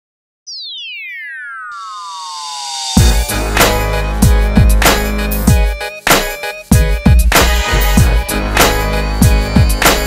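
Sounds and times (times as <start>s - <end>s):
synthesizer tone sweeping downward: 0.5s - 4.2s.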